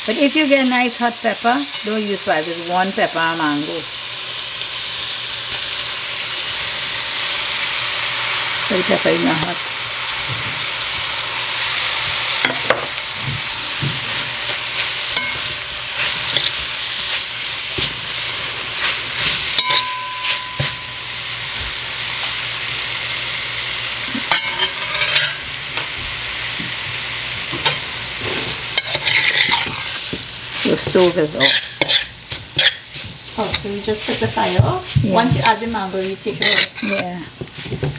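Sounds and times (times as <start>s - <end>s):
food sizzling in hot oil: 0.0s - 37.9s
metal spoon scraping a pot: 24.3s - 25.4s, 27.6s - 30.1s, 31.4s - 34.3s, 36.3s - 37.2s.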